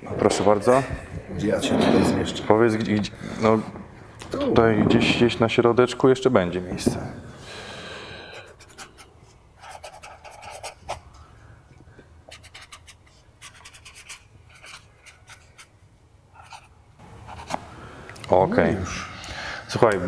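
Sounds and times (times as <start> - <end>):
pen scratching on fabric: 8.6 - 11.0.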